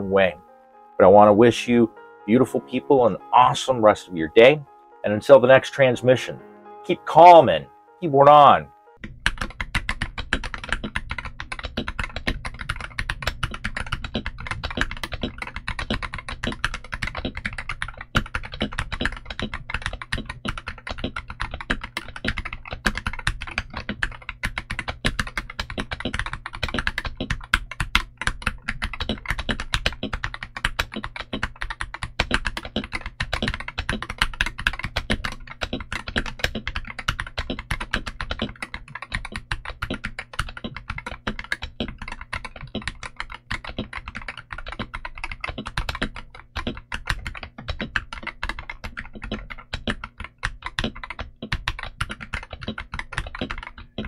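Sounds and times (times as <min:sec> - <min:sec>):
keyboard keystroke clacks: 0:09.0 - 0:54.0.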